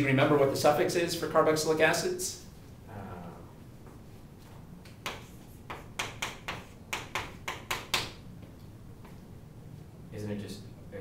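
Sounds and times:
chalk tapping on blackboard: 4.9 - 8.2.

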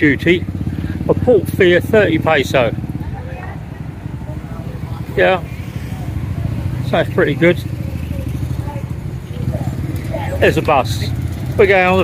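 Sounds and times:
vehicle engine running: 0.0 - 12.0
faint voices: 1.2 - 12.0.

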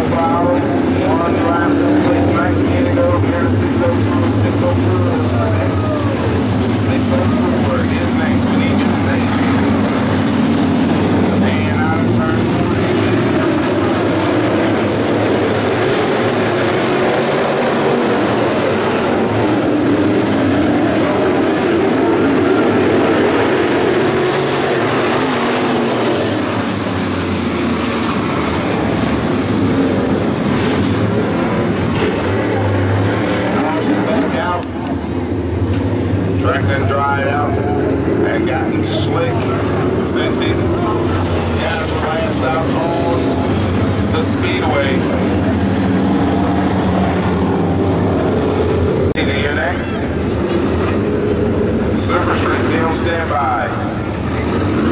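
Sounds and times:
race car engines running: 0.0 - 54.9.

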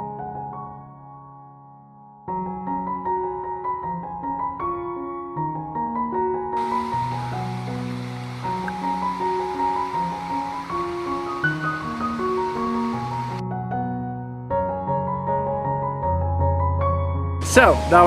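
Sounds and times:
waterfall rushing: 6.6 - 13.4, 17.4 - 18.0
slow keyboard music: 6.6 - 18.0.

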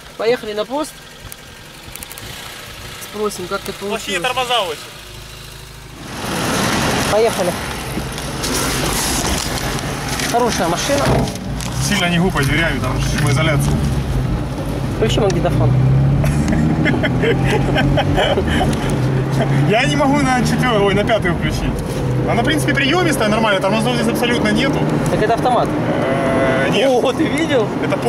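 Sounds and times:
car engine idling: 0.0 - 28.0
road noise: 0.0 - 28.0
engine revving rush: 1.5 - 28.0.

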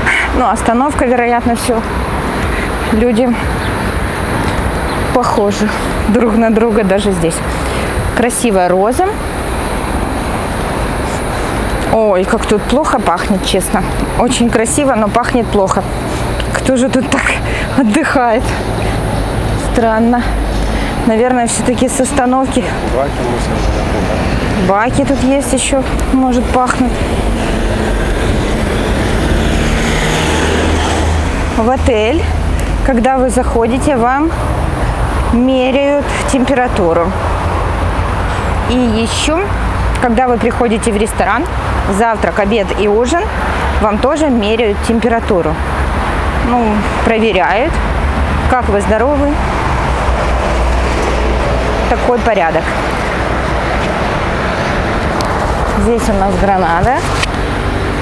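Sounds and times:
road traffic rumble: 0.0 - 58.0
vehicle engine: 0.0 - 58.0.

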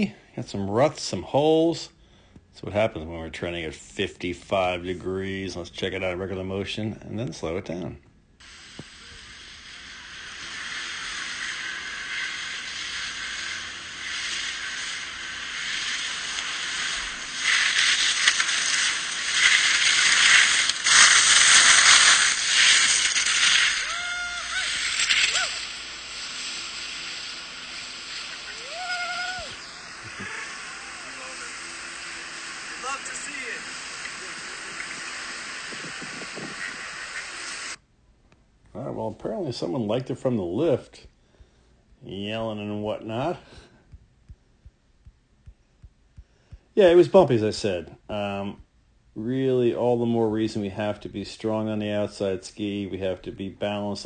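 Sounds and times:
skis scraping over snow: 8.8 - 37.8
person shouting: 23.8 - 25.6, 28.6 - 29.6, 30.2 - 31.6
wind on microphone: 34.8 - 37.0.

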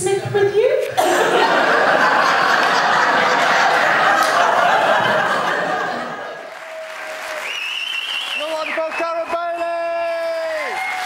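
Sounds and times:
audience laughter: 1.0 - 6.5
audience applauding: 2.0 - 11.0.

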